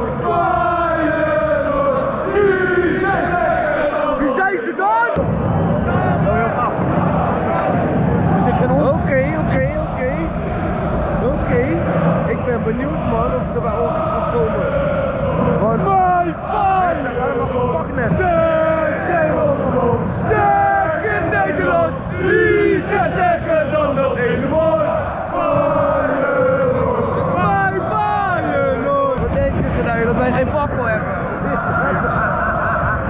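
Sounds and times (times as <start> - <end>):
crowd singing and chanting: 0.0 - 33.0.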